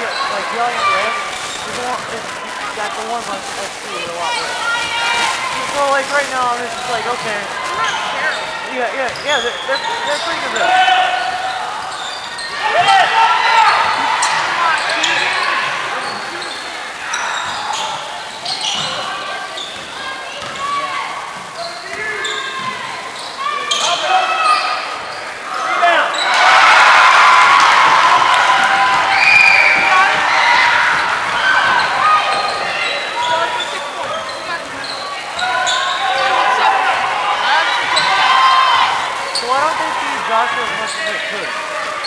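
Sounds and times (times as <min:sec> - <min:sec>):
shoes squeaking on hardwood: 0:00.0 - 0:25.2
voices echoing in a hall: 0:00.0 - 0:42.0
basketball bouncing: 0:19.8 - 0:20.6.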